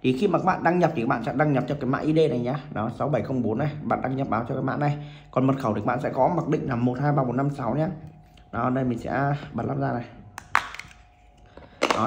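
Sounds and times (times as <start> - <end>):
plastic cover snapping open: 10.4 - 11.0.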